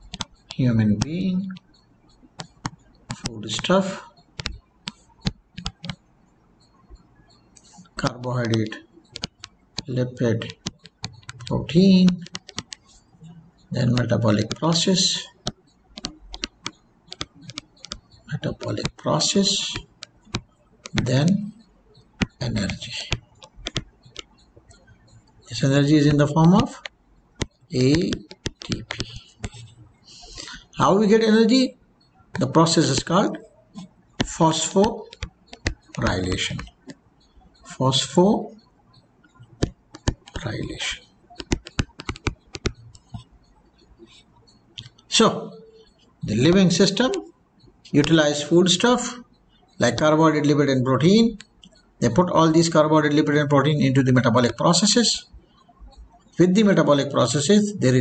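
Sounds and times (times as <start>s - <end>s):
stylus clicking on pen tablet: 0.0s - 58.0s.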